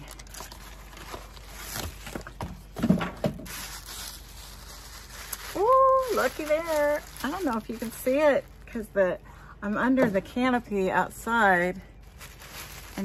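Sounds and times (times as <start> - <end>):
wig fibres rustling: 0.0 - 9.0, 9.9 - 13.0.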